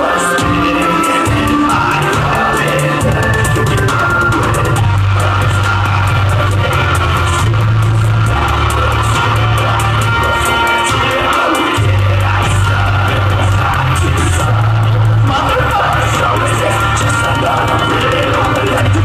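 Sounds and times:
man rapping into microphone: 0.0s - 19.0s
trap beat with heavy bass: 0.0s - 19.0s.

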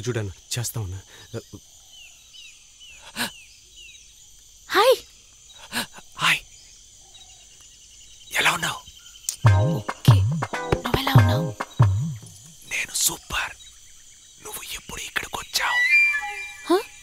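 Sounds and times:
high falling chirps: 8.3s - 13.5s, 15.4s - 17.0s.

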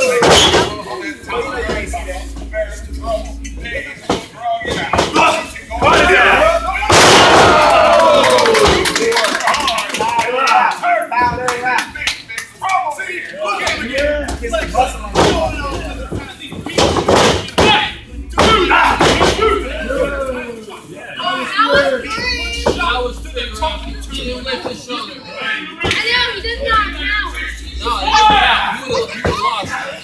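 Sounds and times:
people shouting: 5.1s - 9.2s, 17.6s - 20.5s, 27.9s - 29.8s.

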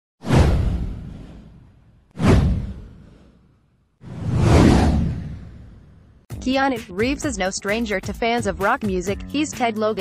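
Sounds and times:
whoosh sound effect: 0.2s - 6.1s
low rumble: 4.0s - 6.3s.

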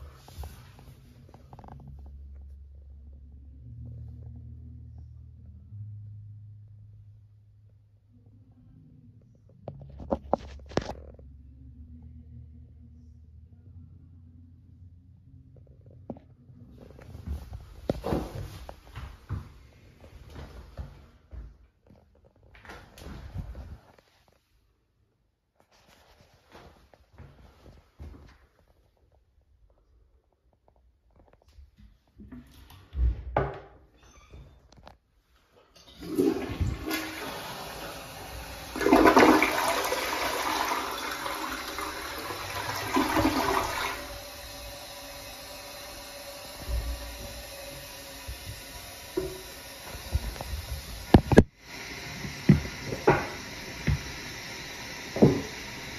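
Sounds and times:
low room hum: 0.0s - 26.7s
toilet flushing: 35.8s - 55.9s.

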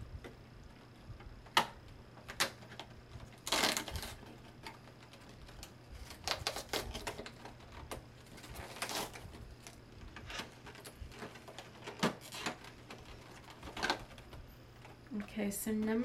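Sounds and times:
packaging crinkle: 1.6s - 15.2s.

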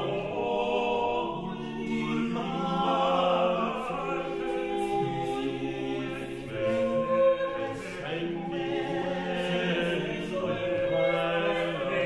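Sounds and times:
vocal ensemble singing unaccompanied: 0.0s - 12.0s.

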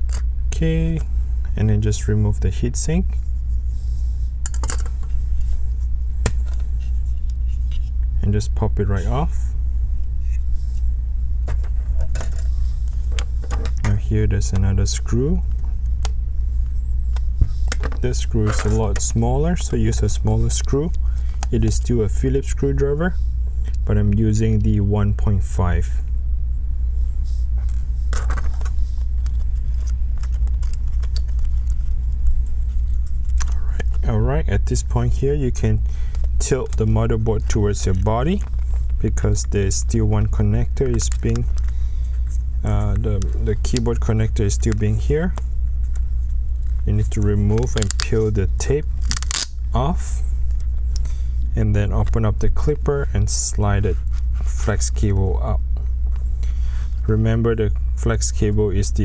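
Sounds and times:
steady low hum: 0.0s - 59.0s
metal parts clicking and rattling: 4.4s - 5.0s.

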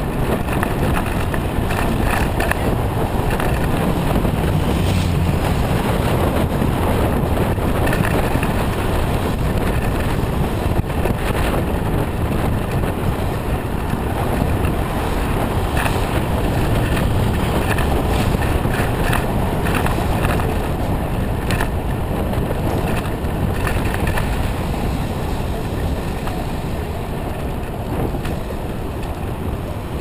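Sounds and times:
road rumble: 0.0s - 30.0s
wind rush: 0.0s - 30.0s.

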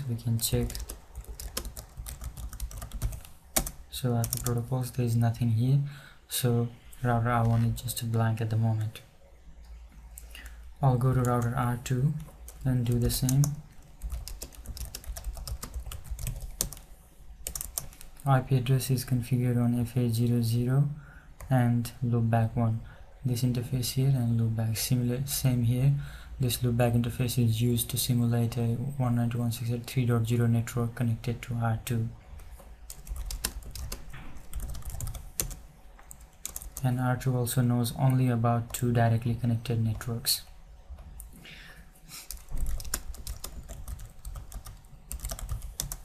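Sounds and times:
low steady hum: 0.0s - 46.0s
computer keyboard typing: 0.4s - 4.6s, 11.2s - 18.2s, 32.9s - 36.8s, 42.2s - 46.0s.

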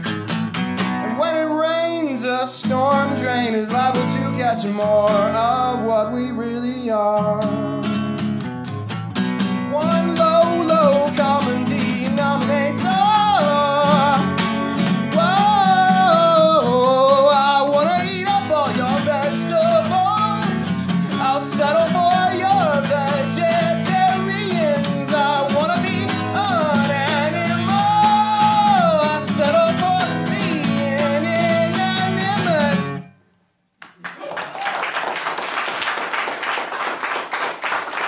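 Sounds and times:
guitar chords: 0.0s - 33.4s
person singing: 1.0s - 8.0s, 9.7s - 33.0s.

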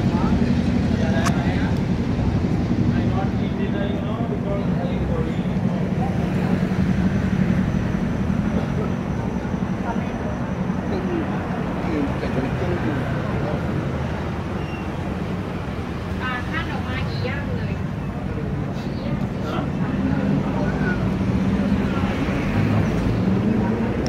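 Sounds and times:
chatter of passers-by: 0.0s - 24.0s
traffic hum: 0.0s - 24.0s.

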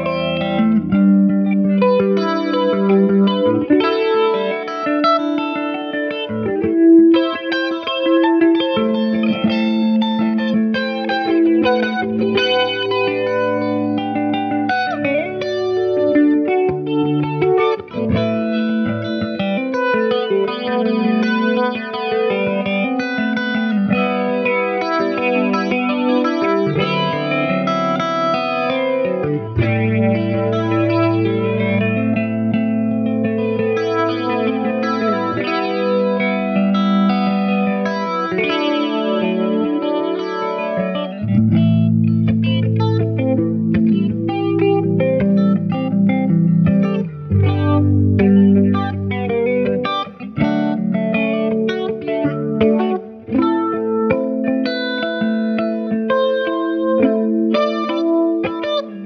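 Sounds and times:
electric guitar playing: 0.0s - 59.0s.

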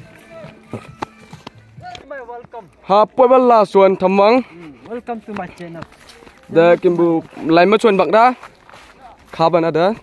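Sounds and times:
footsteps on dry grass: 0.0s - 10.0s.

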